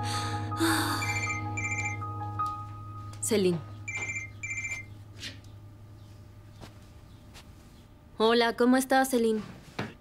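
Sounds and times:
soft background music: 0:00.0 - 0:08.4
trilling phone ringtone: 0:00.9 - 0:02.3, 0:03.9 - 0:04.9.

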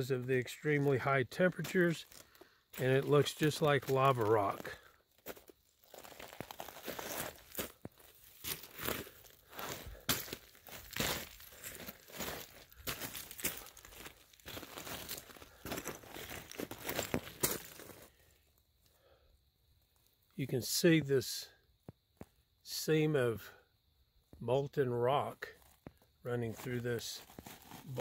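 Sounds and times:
footsteps crunching on loose rock: 0:00.7 - 0:18.2, 0:25.5 - 0:28.0.

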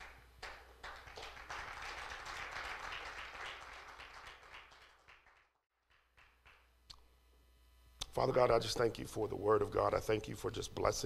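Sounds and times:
congregation clapping: 0:00.0 - 0:06.8
low electrical hum: 0:00.0 - 0:11.0.

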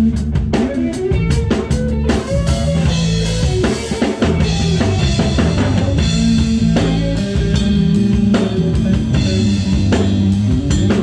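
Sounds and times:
drum kit: 0:00.0 - 0:11.0
electric guitars: 0:00.0 - 0:11.0.

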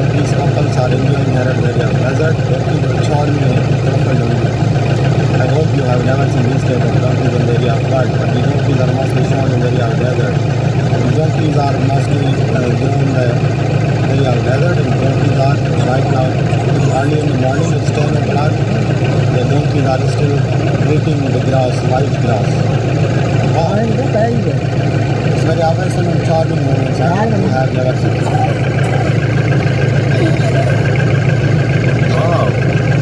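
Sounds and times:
steady low hum: 0:00.0 - 0:33.0
vehicle engine idling: 0:00.0 - 0:33.0
person's voice bending in pitch: 0:30.0 - 0:31.1.

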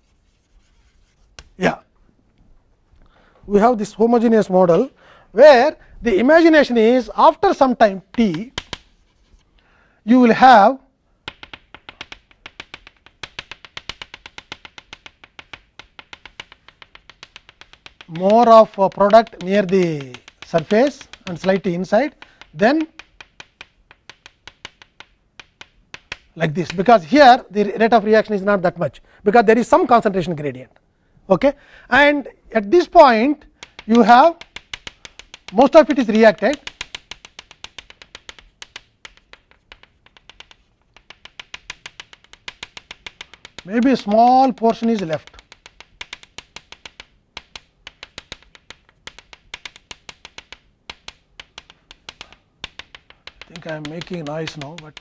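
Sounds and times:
chalk tapping on blackboard: 0:00.0 - 0:01.8, 0:06.1 - 0:09.8, 0:11.2 - 0:28.5, 0:32.1 - 0:55.0.

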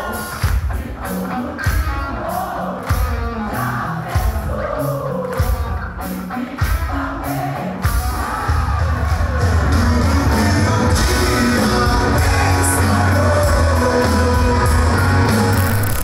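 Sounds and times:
rock band playing live: 0:00.0 - 0:16.0
man singing: 0:09.6 - 0:16.0.

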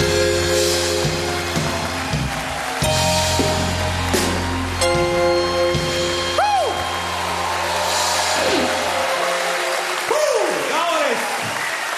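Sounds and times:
low bass: 0:00.0 - 0:09.1
audience applause: 0:00.0 - 0:11.9
audience whooping: 0:00.8 - 0:11.9
electric guitar chord ringing: 0:02.8 - 0:08.1.

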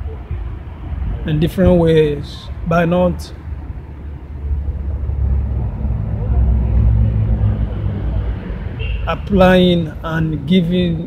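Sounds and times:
vehicle engine passing: 0:00.0 - 0:11.0.

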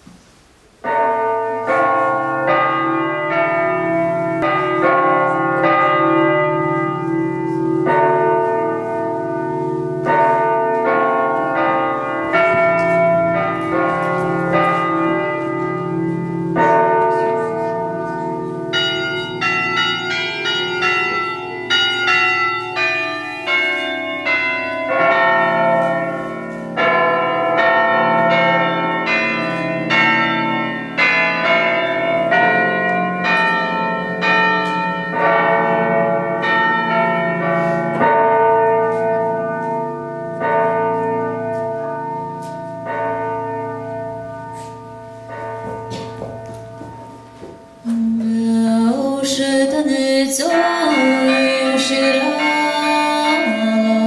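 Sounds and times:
bell melody: 0:00.9 - 0:54.0.

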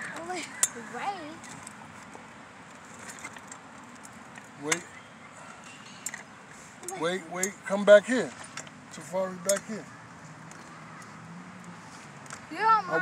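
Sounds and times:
voices speaking: 0:00.0 - 0:02.2, 0:06.5 - 0:13.0
faint outdoor background noise: 0:00.0 - 0:13.0.

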